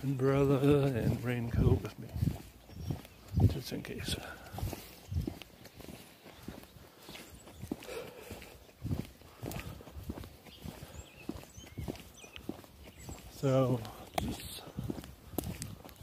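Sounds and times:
footsteps outdoors: 0:00.0 - 0:16.0.

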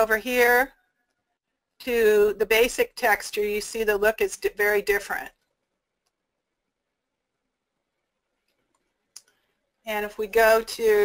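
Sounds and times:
woman speaking: 0:00.0 - 0:00.7, 0:01.8 - 0:05.3, 0:09.9 - 0:11.0.

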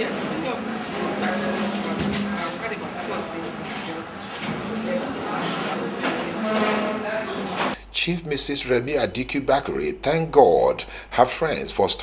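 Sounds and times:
crowd sound: 0:00.0 - 0:09.9.

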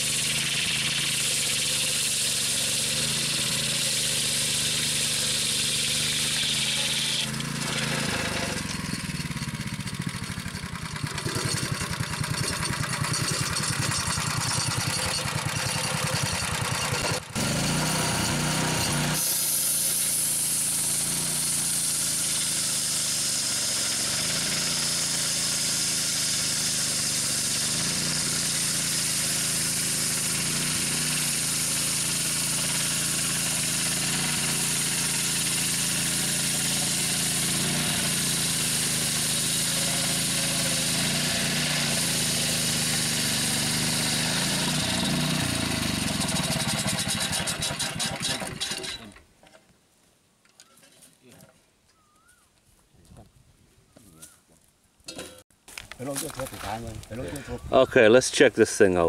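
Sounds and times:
circular saw cutting log: 0:00.0 - 0:49.2
engine drone: 0:00.0 - 0:49.2.

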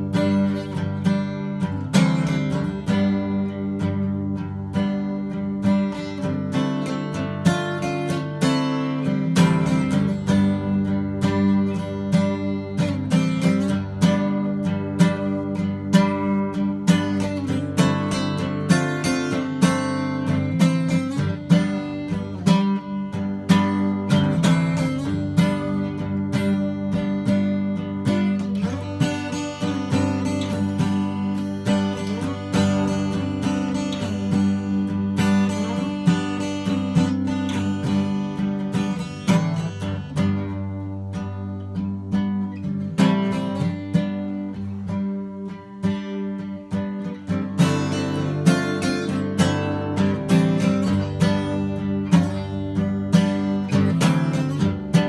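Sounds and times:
acoustic guitar strummed and picked: 0:00.0 - 0:55.0.

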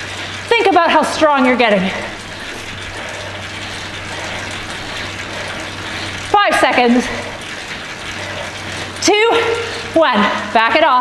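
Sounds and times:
bike trainer whirring: 0:00.0 - 0:11.0.

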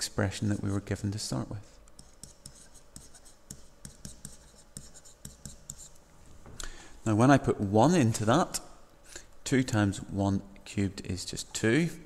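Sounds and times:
stylus scratching on tablet: 0:00.3 - 0:06.0.

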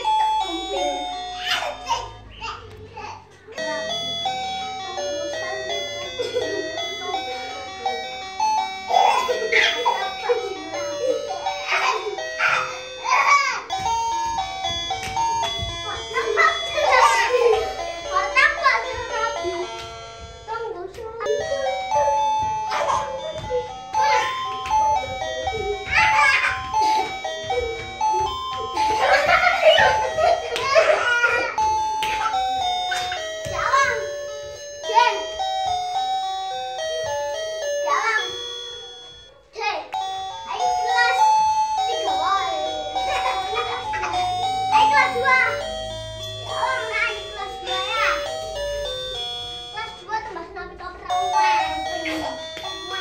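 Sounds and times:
children calling out: 0:00.0 - 0:53.0.

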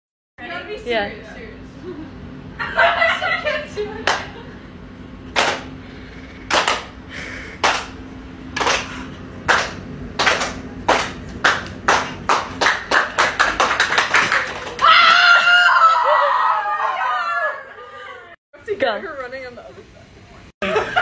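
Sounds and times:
sharp hand claps: 0:04.0 - 0:04.3, 0:05.4 - 0:05.7, 0:06.5 - 0:06.9, 0:07.6 - 0:08.0, 0:08.6 - 0:14.9
loud drawn-out shout: 0:14.7 - 0:18.1.

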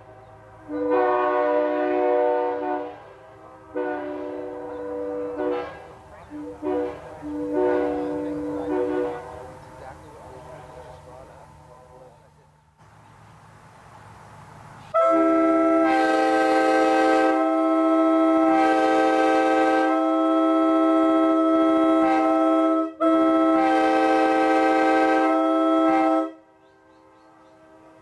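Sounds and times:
locomotive air horn: 0:00.0 - 0:11.4, 0:14.9 - 0:28.0.

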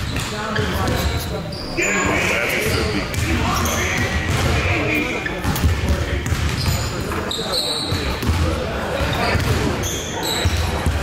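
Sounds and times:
indistinct voices and chatter: 0:00.0 - 0:11.0
basketballs bouncing on gym floor: 0:02.7 - 0:07.2, 0:07.8 - 0:11.0.

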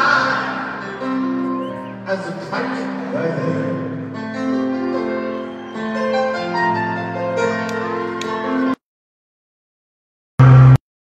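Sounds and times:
piano and guitar chords: 0:00.0 - 0:08.8.

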